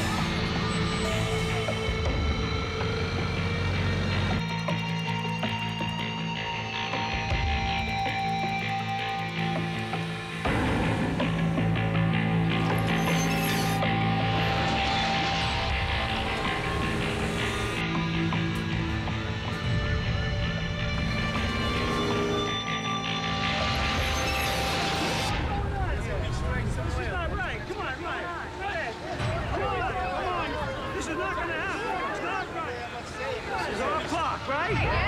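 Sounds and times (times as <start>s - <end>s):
film soundtrack music over speakers: 0.0s - 33.0s
people talking: 25.3s - 35.0s.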